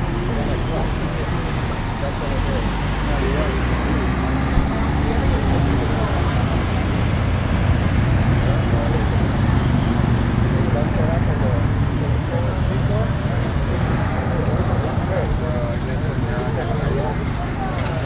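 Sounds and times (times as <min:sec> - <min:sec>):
cars driving past: 0:00.0 - 0:18.0
indistinct voices: 0:00.0 - 0:18.0.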